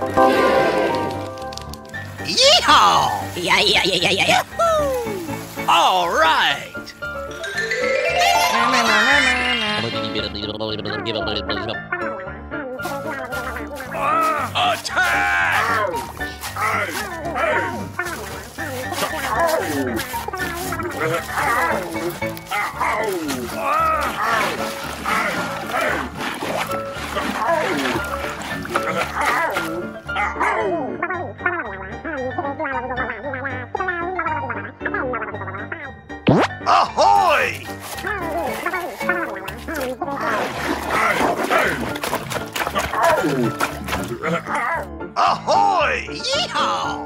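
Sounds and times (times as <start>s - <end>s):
cartoonish vocal noises: 2.2s - 11.8s, 12.8s - 35.2s, 36.3s - 42.0s, 42.7s - 47.0s.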